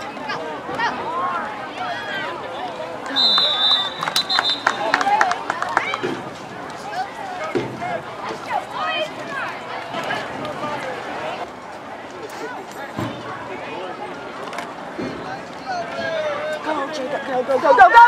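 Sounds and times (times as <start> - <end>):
spectators' voices: 0.0 - 18.0
referee's whistle: 3.1 - 5.0.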